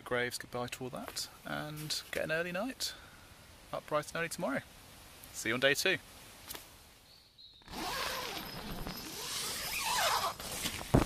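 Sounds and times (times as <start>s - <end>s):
zipper on tent fabric: 7.6s - 11.0s.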